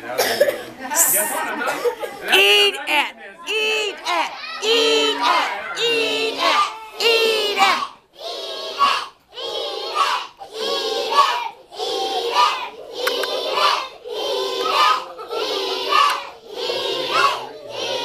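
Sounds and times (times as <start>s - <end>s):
children chanting in unison: 3.5s - 18.0s.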